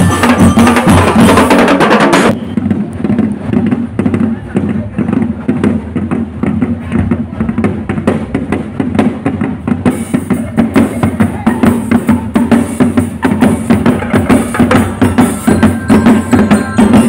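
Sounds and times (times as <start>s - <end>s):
cymbals and bell lyre: 0.0s - 1.5s, 13.4s - 17.0s
marching band drums: 0.0s - 17.0s
crowd voices: 2.4s - 17.0s.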